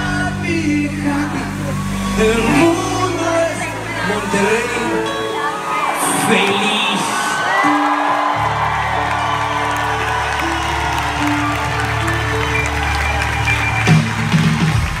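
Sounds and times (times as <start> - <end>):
crowd cheering and whooping: 0.0 - 15.0
live pop band music: 0.0 - 15.0.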